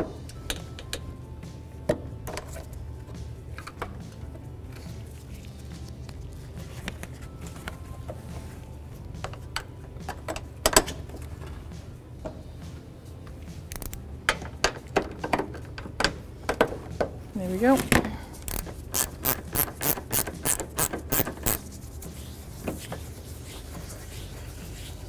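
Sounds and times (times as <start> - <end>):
hand ratchet clicking: 13.7 - 14.0, 18.5 - 21.6.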